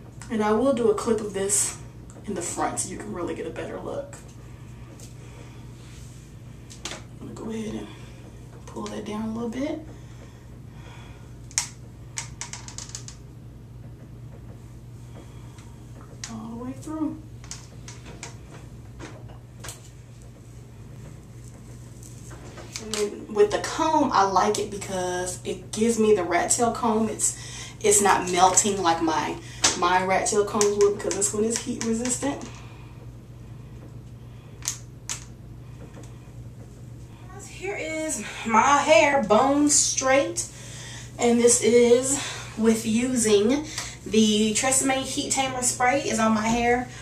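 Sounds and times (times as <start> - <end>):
steady low hum: 0.0 - 47.0.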